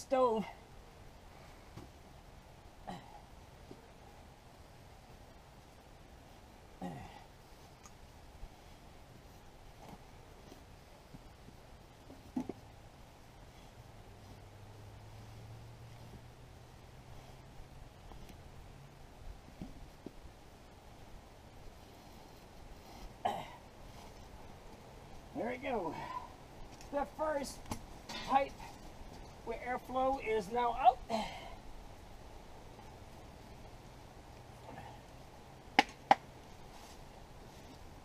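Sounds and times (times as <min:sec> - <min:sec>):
background hiss: 0:00.0 - 0:38.0.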